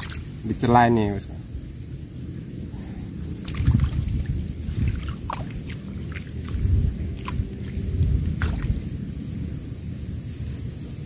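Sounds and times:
small splashes: 0.0 - 0.4, 3.4 - 8.9
water sloshing and dripping: 0.0 - 0.6, 3.2 - 9.0
low uneven rumble: 0.0 - 11.0.

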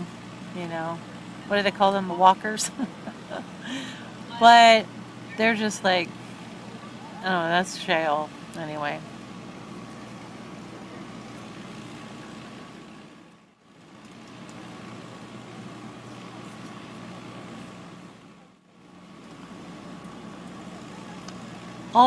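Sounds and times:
idling vehicle engines hum: 0.0 - 22.0.

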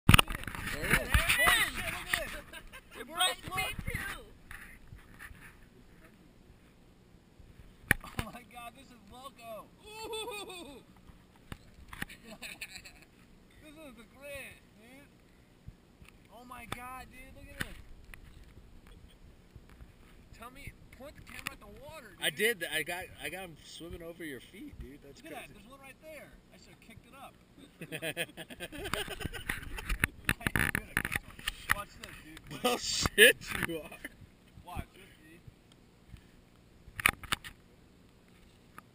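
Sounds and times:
people laughing: 2.0 - 3.1, 9.8 - 10.8, 12.1 - 13.1, 27.6 - 29.9
person speaking: 29.9 - 34.0.

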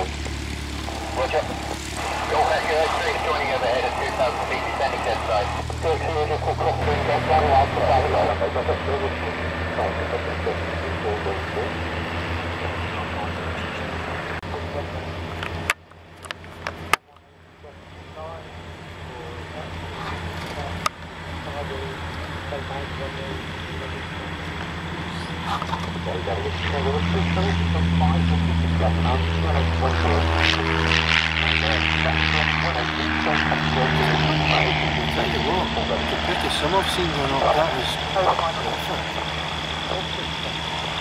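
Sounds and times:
people's voices: 0.0 - 15.2, 16.9 - 41.0
light aircraft engine and propeller: 0.0 - 41.0.

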